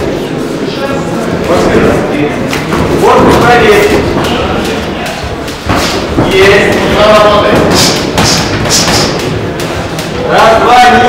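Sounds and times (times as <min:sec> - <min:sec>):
boxing punches thudding: 0:04.1 - 0:10.1.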